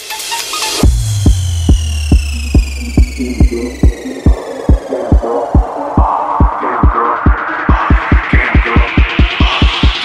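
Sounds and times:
held bass note: 0.8 - 5.7
synth tone sliding down: 0.8 - 6.4
kick drum beat: 0.8 - 10.0.

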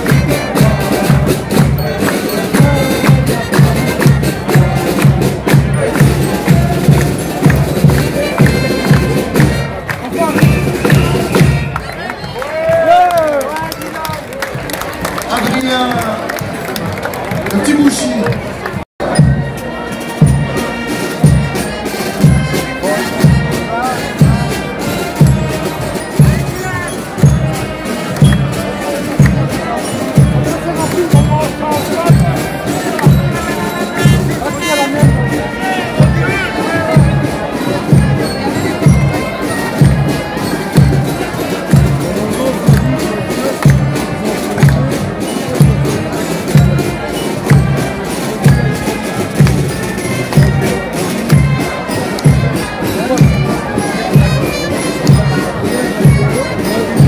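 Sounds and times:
bass drum beat: 0.0 - 11.9, 18.3 - 57.0
crowd voices: 0.0 - 57.0
marching band playing: 0.0 - 57.0.

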